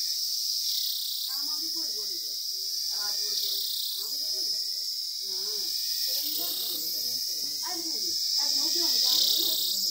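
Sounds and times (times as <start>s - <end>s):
cicada buzzing: 0.0s - 9.9s.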